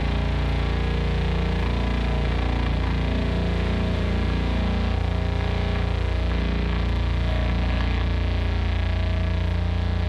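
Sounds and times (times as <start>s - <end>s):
distorted metal guitars and bass: 0.0s - 10.0s.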